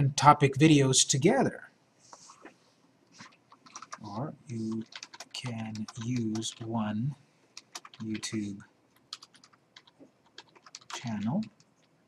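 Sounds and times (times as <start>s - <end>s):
computer keyboard typing: 3.2s - 6.8s, 7.6s - 12.0s.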